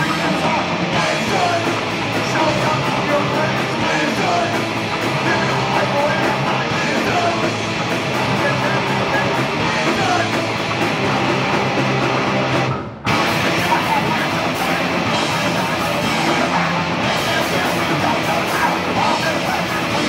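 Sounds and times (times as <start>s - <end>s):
bass guitar: 0.0s - 20.0s
distorted electric guitar: 0.0s - 20.0s
drum kit: 0.0s - 20.0s.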